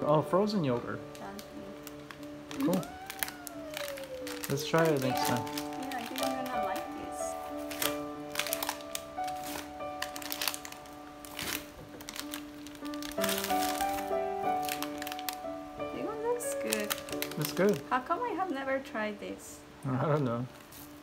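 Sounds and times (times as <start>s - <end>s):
background music with held notes: 0.0s - 21.0s
plastic wrappers crinkling: 0.3s - 18.0s, 20.0s - 21.0s.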